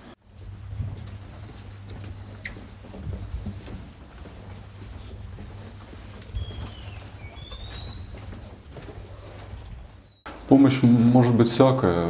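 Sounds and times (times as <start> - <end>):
footsteps in corridor: 0.0 - 11.4
shoe soles squeaking on floor: 0.3 - 10.3.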